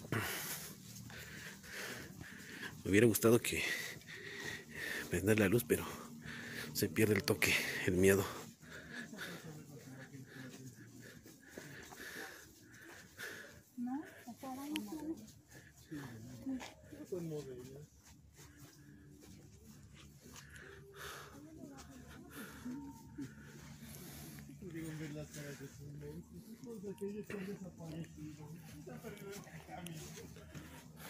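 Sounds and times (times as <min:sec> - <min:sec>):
people talking and calling out: 0:00.0 - 0:31.0.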